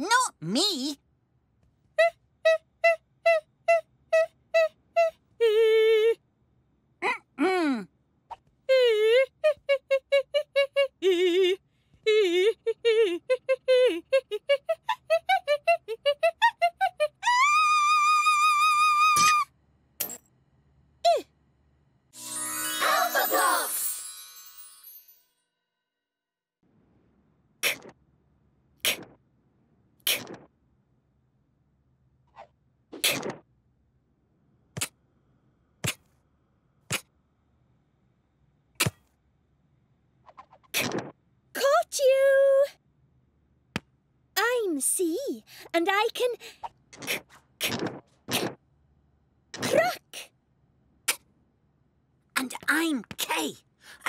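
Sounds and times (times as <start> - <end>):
high-pitched cartoon voice chanting: 0.0 - 1.0, 22.8 - 23.8
cartoon voice singing high note: 22.8 - 23.8.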